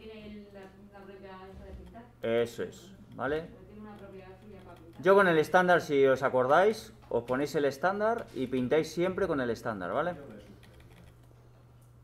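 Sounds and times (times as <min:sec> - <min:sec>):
low steady hum: 0:00.0 - 0:12.0
faint keyboard clicks: 0:03.1 - 0:05.1, 0:10.1 - 0:12.0.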